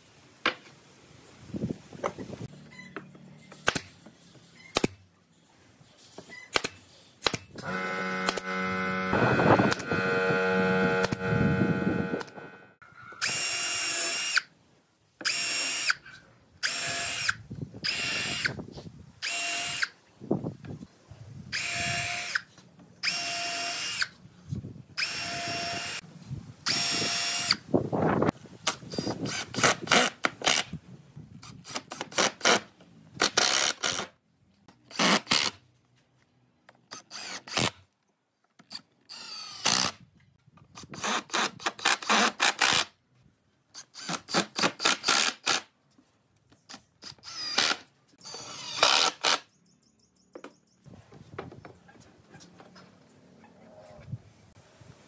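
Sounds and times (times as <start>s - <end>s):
cordless drill drilling into wood: 7.6s - 12.6s, 13.2s - 14.5s, 15.2s - 16.0s, 16.6s - 18.6s, 19.2s - 19.9s, 21.6s - 22.4s, 23.0s - 24.1s, 25.0s - 26.0s, 26.7s - 27.6s, 36.9s - 37.7s, 39.1s - 40.0s, 47.0s - 49.4s
drill driving screws: 7.6s - 12.6s, 13.2s - 14.5s, 15.2s - 16.0s, 16.6s - 18.6s, 19.2s - 19.9s, 21.6s - 24.1s, 25.0s - 26.0s, 26.7s - 27.6s, 28.7s - 30.7s, 36.9s - 37.8s, 39.1s - 40.0s, 43.8s - 45.6s, 47.0s - 49.4s.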